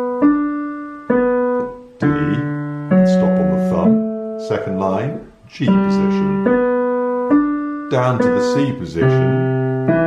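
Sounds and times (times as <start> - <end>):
digital piano notes: 0.0 - 10.0.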